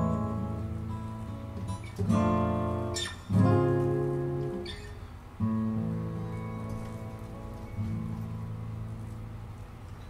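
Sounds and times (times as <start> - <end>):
acoustic guitar chords strummed: 0.0 - 10.0.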